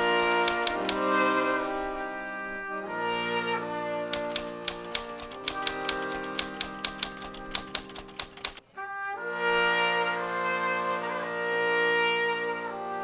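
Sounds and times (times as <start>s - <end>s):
typewriter key clicks: 0.0s - 1.0s, 4.1s - 8.6s.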